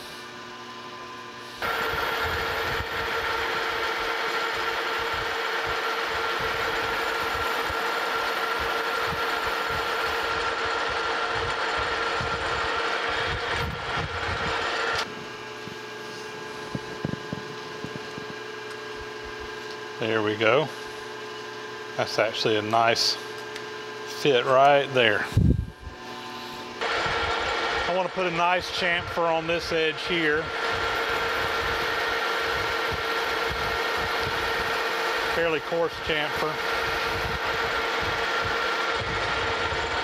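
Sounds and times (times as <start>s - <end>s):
metal lathe running: 0.3s - 40.0s.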